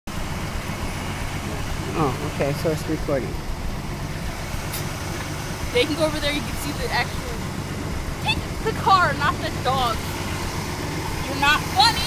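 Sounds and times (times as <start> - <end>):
car engine running: 0.1 - 12.0.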